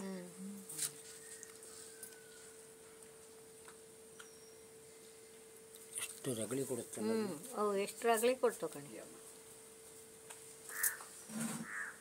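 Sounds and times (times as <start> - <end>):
faint steady hum: 0.0 - 12.0
crow cawing: 10.7 - 12.0.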